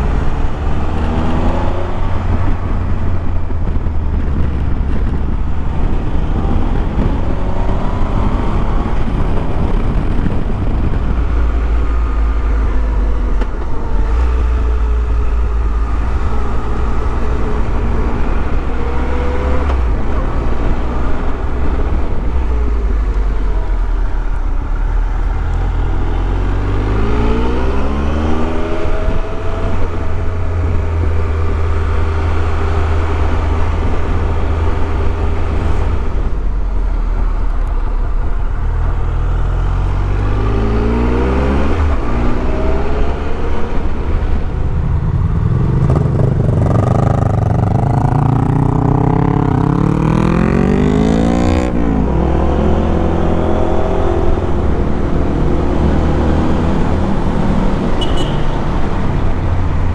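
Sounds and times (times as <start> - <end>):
wind on microphone: 0.0 - 59.9
motorcycle engine revving: 38.8 - 59.9.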